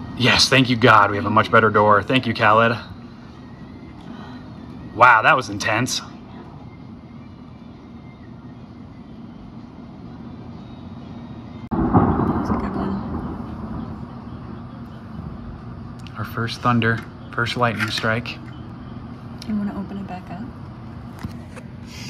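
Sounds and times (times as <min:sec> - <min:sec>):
thunder clap and rumble: 0:11.6 - 0:17.1
storm hiss: 0:11.6 - 0:17.7.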